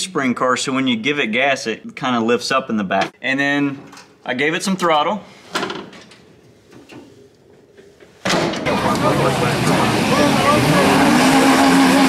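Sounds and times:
race car engines running: 8.3 - 12.0
voices: 8.3 - 12.0.

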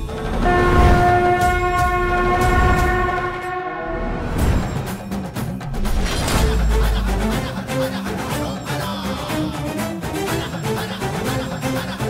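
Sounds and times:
blown horn-like tone: 0.3 - 4.4.

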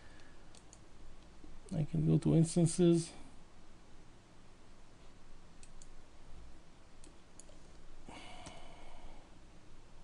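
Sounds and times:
computer mouse clicks: 0.2 - 1.8, 5.6 - 6.0, 7.0 - 7.6
man speaking: 1.7 - 3.2.

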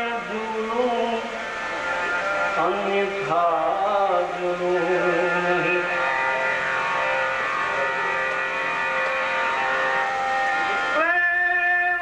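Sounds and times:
person singing: 0.0 - 1.4, 2.6 - 6.6, 10.6 - 12.0
harmonium playing: 0.0 - 12.0.

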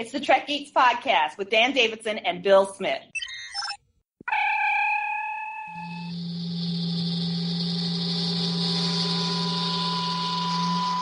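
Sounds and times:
thin high tone: 4.3 - 11.0
low hum: 5.7 - 11.0.

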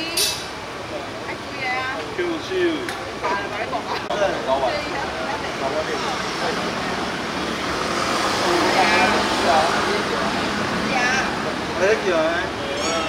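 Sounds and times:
street traffic: 0.0 - 13.0
people calling out: 12.6 - 13.0.

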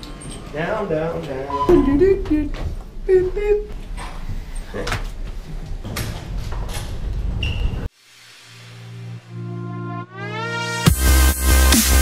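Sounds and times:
elevator doors sliding open: 3.8 - 7.9.

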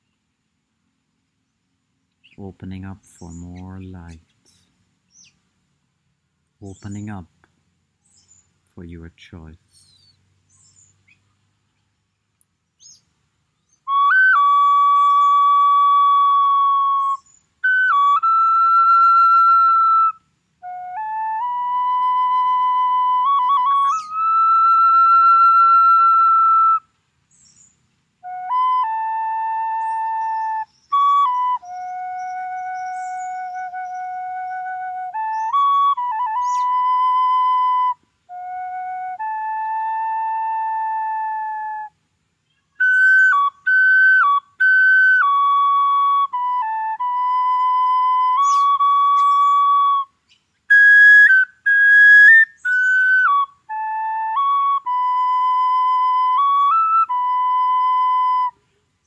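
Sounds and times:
wooden flute slow melody: 13.6 - 59.0.

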